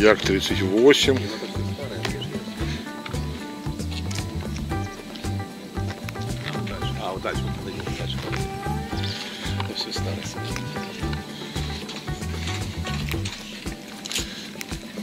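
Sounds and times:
background music with stepping bass: 0.0 - 15.0.

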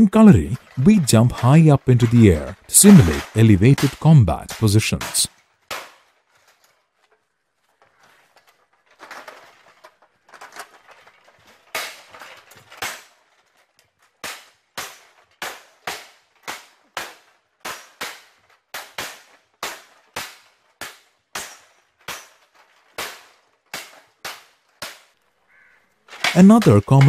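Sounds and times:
swords striking shields: 0.1 - 5.9, 26.1 - 27.0.

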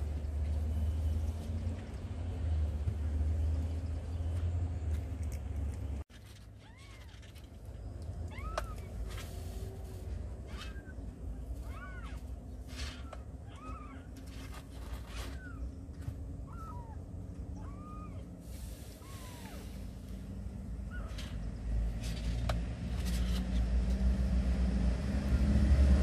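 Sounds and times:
cat meowing: 6.6 - 7.4, 8.2 - 8.9, 12.9 - 14.5.

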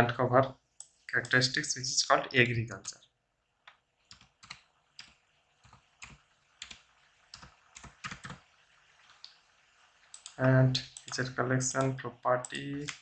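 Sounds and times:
faint keyboard typing: 0.0 - 1.7, 2.7 - 13.0.

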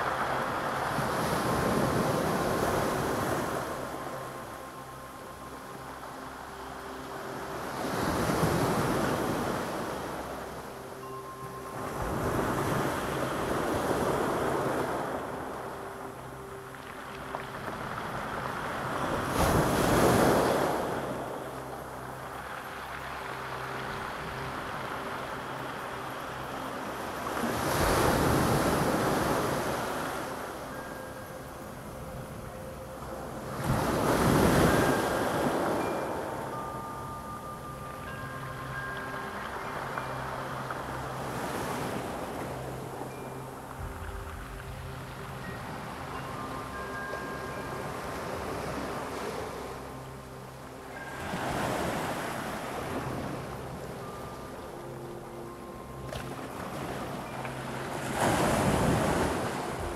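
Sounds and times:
waves breaking on pebble beach: 0.0 - 3.9, 16.8 - 21.3.

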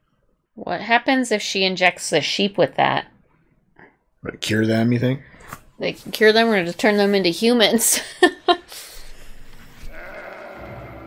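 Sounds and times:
sheep bleating: 9.9 - 11.0.

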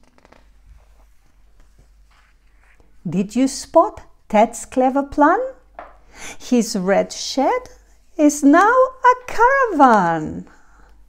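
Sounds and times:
book page turning: 0.0 - 3.0.

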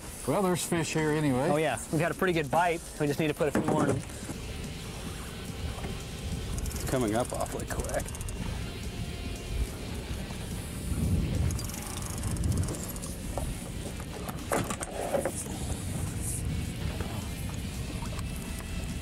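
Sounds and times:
low rumble of wind and water: 0.0 - 19.0
background music: 1.1 - 19.0.

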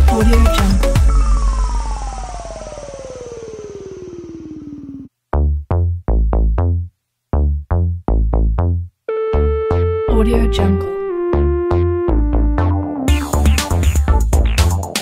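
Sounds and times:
synthesizer tone sliding down: 0.8 - 5.1, 9.1 - 14.5
fast pulsing buzz: 0.9 - 5.1.

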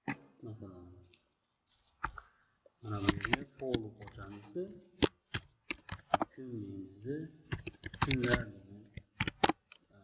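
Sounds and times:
sharp computer clicks: 3.0 - 4.2, 5.0 - 6.3, 7.5 - 9.8.

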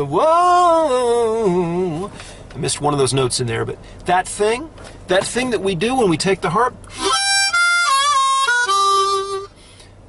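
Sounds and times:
harmonica phrase with bending notes: 6.9 - 9.8.

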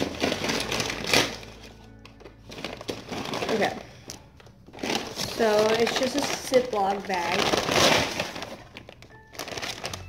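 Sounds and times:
plastic package tearing: 0.0 - 10.0.

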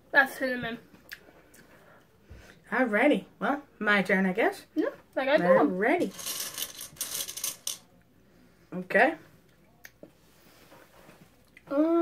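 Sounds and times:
jelly beans rattling in box: 6.1 - 7.8.

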